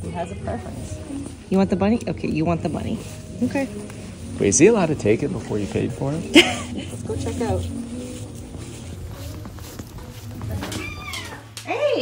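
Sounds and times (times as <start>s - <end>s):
cat meowing: 10.6s - 11.6s.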